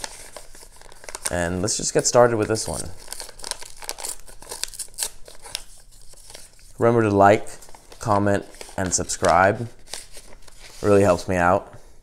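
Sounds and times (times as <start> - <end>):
paper envelope tearing: 0.0 - 6.8, 7.6 - 11.0.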